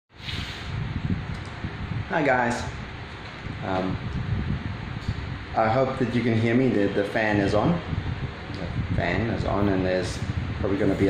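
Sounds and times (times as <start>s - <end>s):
electric fan running: 0.1s - 11.0s
road traffic rumble: 0.1s - 11.0s.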